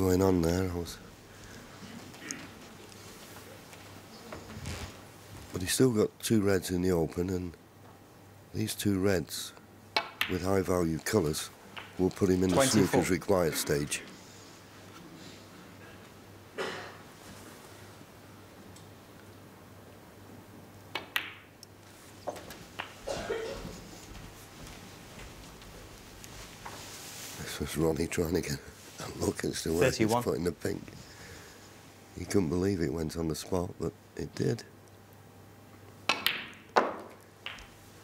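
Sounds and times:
quiet arena hush: 0:00.0 - 0:19.4, 0:21.7 - 0:35.1
snooker balls clicking: 0:09.9 - 0:12.3, 0:20.9 - 0:23.1, 0:36.0 - 0:37.8
balls knocking faintly: 0:10.0 - 0:12.5
cue striking snooker ball: 0:36.1 - 0:37.8.

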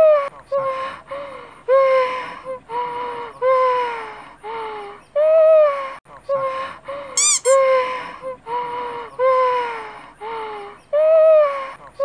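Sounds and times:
high squeaky chirping: 0:07.2 - 0:07.6
hooting calls sliding down: 0:07.2 - 0:07.6.

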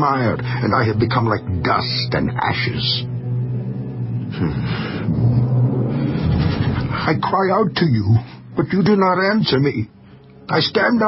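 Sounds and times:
low rumbling drone: 0:00.0 - 0:09.3.

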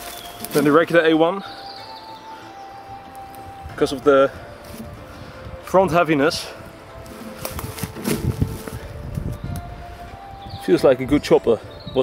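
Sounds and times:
dry leaves and twigs rustling: 0:00.0 - 0:11.3.

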